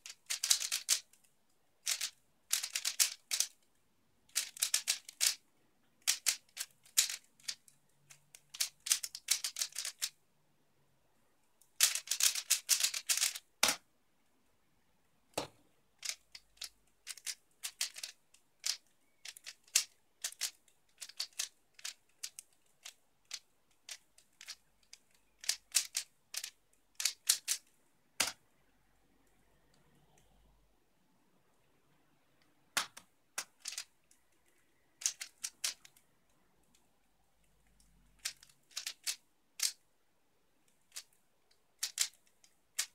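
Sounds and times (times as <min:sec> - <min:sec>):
plastic cube layers clicking: 0:00.0 - 0:03.7, 0:04.3 - 0:05.4, 0:06.0 - 0:10.2, 0:11.6 - 0:13.8, 0:15.3 - 0:28.4, 0:32.7 - 0:39.8, 0:40.6 - 0:42.9.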